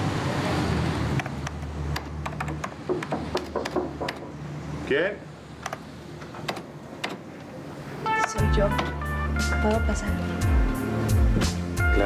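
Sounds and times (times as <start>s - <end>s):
keyboard typing: 1.2s - 4.3s.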